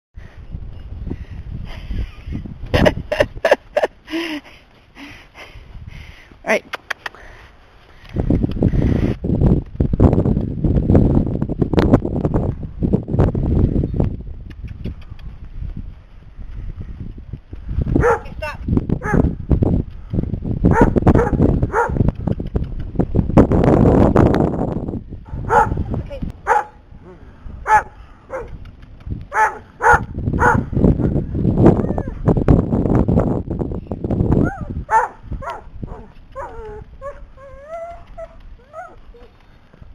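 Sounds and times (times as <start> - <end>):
dog barking: 18.0 - 18.3, 20.7 - 22.0, 25.3 - 25.8, 26.4 - 26.8, 27.7 - 28.5, 29.3 - 30.6, 34.5 - 37.2.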